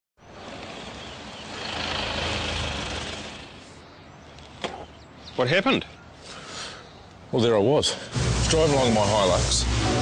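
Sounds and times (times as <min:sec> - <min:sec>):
pickup engine and tyre noise: 0:00.2 - 0:05.3.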